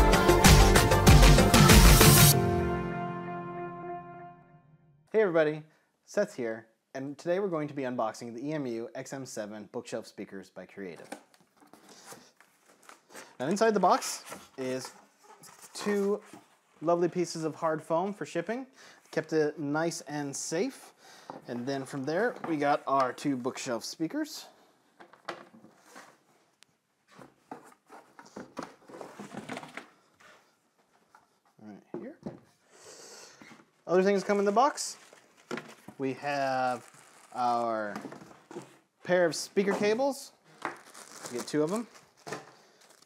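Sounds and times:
cardboard packing rustling and scraping: 11.5 - 17.0, 25.4 - 31.5, 33.4 - 38.9, 39.6 - 43.0.

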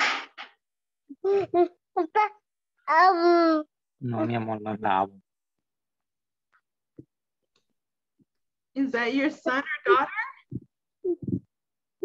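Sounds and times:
person speaking over video call: 4.0 - 5.2.

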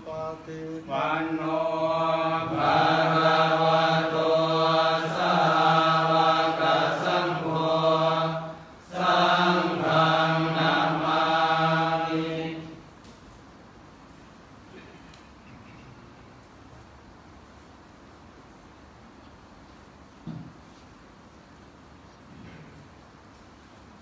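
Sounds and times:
monks chanting: 0.0 - 12.8.

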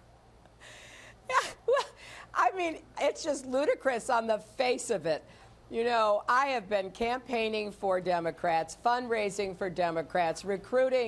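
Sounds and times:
woman inhaling: 0.6 - 1.2, 2.0 - 2.4.

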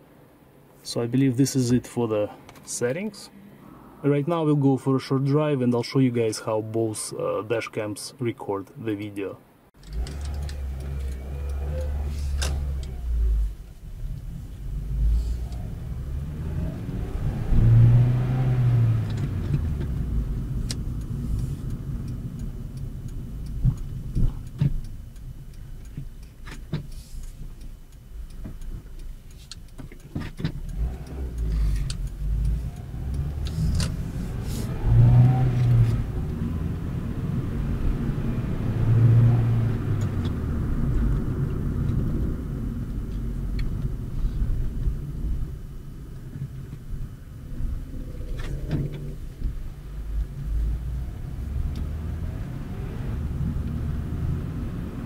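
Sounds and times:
car engine and road rumble: 0.0 - 55.0.

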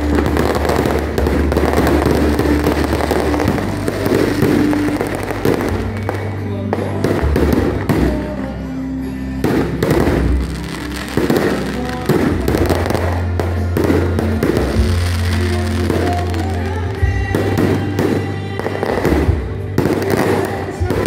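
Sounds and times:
fireworks crackling and popping: 0.0 - 21.0
music playing: 0.0 - 21.0.

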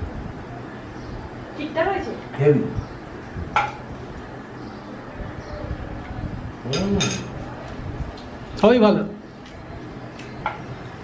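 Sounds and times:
tableware clink: 6.7 - 7.4.

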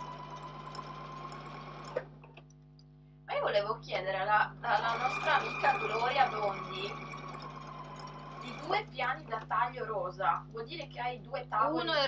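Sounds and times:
electric sewing machine running: 0.0 - 2.1, 4.7 - 9.9.

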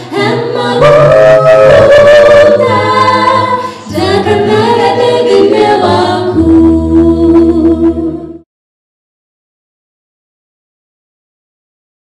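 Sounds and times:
male vocal group singing in harmony: 0.0 - 8.4.

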